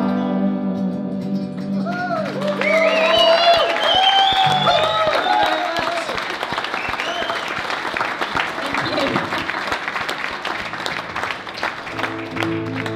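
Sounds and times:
acoustic guitar: 0:00.0 - 0:03.2, 0:10.5 - 0:12.9
audience applauding and cheering: 0:01.7 - 0:12.9
whoops: 0:01.8 - 0:07.6.

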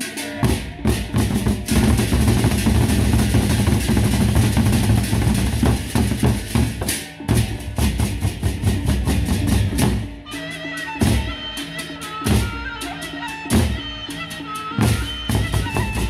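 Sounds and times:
barrel drums beaten rapidly: 0:00.0 - 0:10.2, 0:14.8 - 0:16.0.

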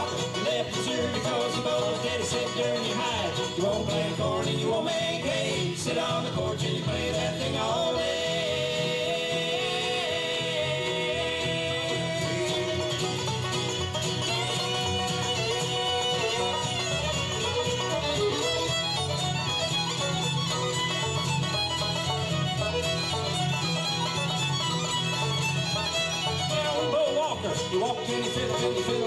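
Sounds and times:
bluegrass band playing: 0:00.0 - 0:29.0
fiddle melody: 0:00.0 - 0:29.0.

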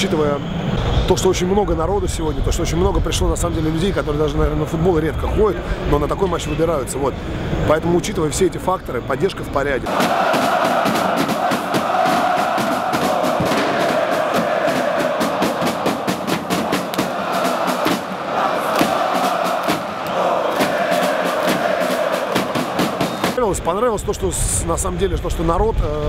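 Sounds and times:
crowd chanting in unison: 0:09.8 - 0:23.4
steady drum beat: 0:09.9 - 0:23.5.

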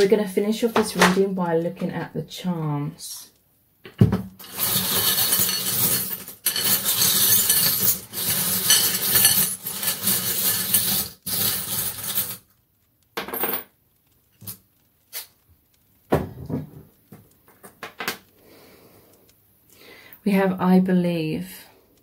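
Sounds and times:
charms clinking as set down: 0:04.4 - 0:12.4, 0:13.2 - 0:13.8
metal charms jingling in bowl: 0:04.4 - 0:12.4.

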